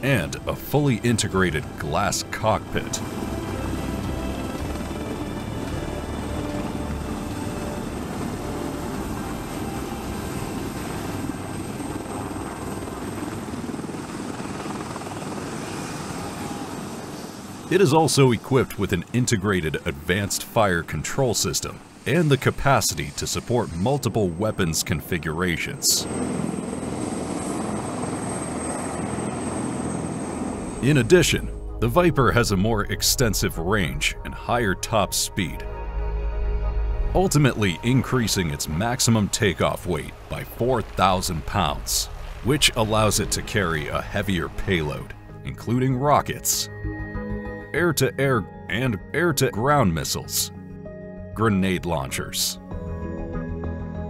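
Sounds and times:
helicopter rotor and turbine: 0:00.0 - 0:48.7.

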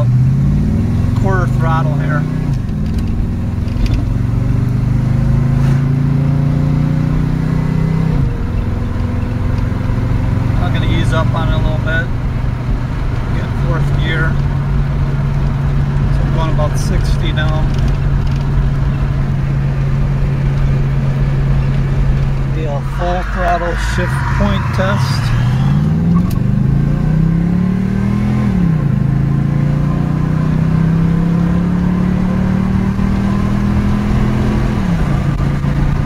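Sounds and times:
car engine accelerating and shifting: 0:00.0 - 0:36.0.

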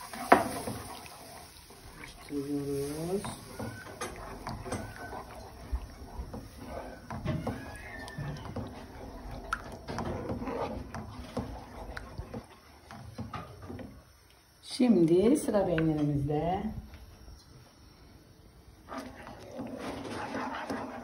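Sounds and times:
wooden spoon scraping a pan: 0:00.0 - 0:14.0, 0:18.8 - 0:21.0.

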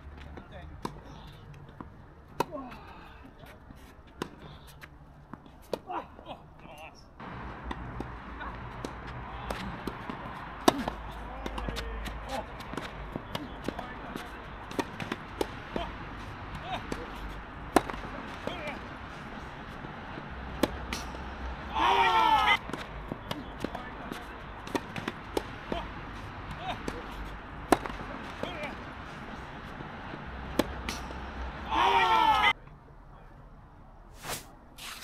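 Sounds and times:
racquets striking tennis ball: 0:07.2 - 0:21.7, 0:22.5 - 0:31.6.

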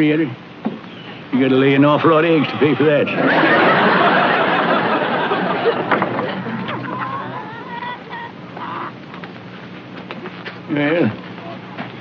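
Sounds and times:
hens clucking: 0:00.8 - 0:09.7.

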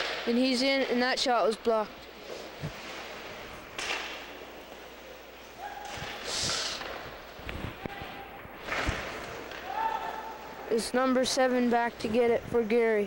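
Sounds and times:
puck thudding against boards: 0:03.8 - 0:04.2, 0:08.6 - 0:09.7.

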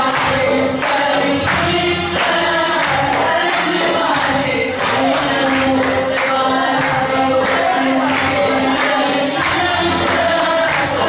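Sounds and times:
group of people singing: 0:00.0 - 0:11.0
hand clapping: 0:00.0 - 0:11.0.

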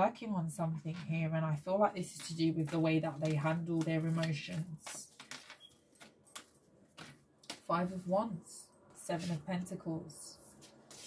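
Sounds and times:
cards clicking and tapping: 0:02.2 - 0:07.6.

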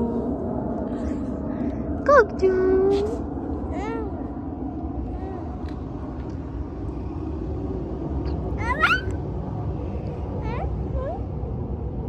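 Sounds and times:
low background hum: 0:00.0 - 0:12.0
toddler squealing: 0:08.6 - 0:09.2.

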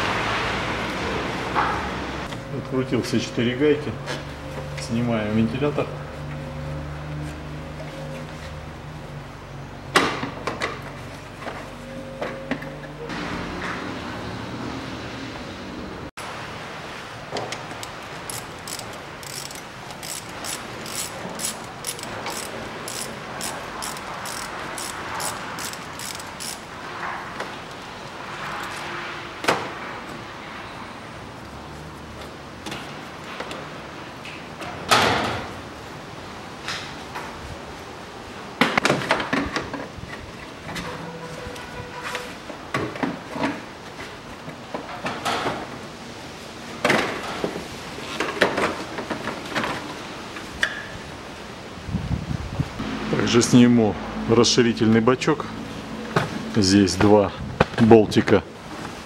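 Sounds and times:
ratchet wrench clicking: 0:17.8 - 0:26.7.

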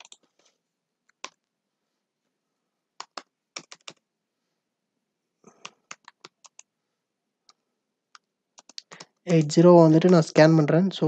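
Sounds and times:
computer keyboard key clicks: 0:08.2 - 0:09.1.

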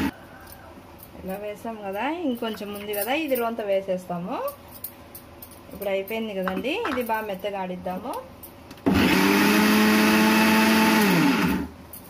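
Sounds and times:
mixer grinder motor: 0:08.8 - 0:11.7.

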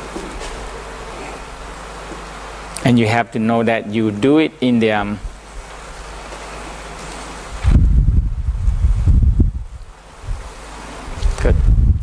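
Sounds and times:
microphone rumbling: 0:07.5 - 0:10.5, 0:11.1 - 0:12.0.

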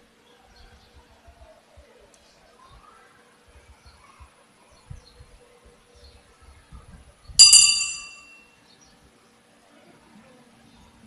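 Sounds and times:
bright metallic ring: 0:07.4 - 0:08.5.

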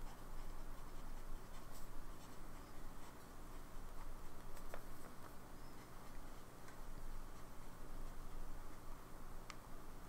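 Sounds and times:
pen nib scratching on paper: 0:00.0 - 0:08.9.

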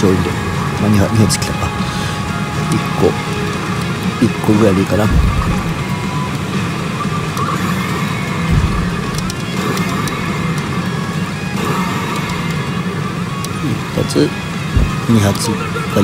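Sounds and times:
constant hall noise: 0:00.0 - 0:16.0
gaming machine music and effects: 0:00.0 - 0:16.0.

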